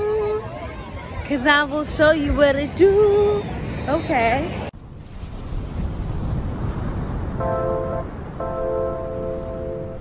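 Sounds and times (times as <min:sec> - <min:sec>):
surf washing over sand: 0:04.8 - 0:10.0.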